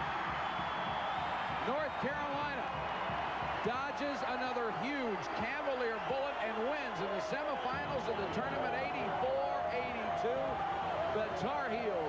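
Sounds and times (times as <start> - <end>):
arena crowd cheering and shouting: 0.0 - 12.0.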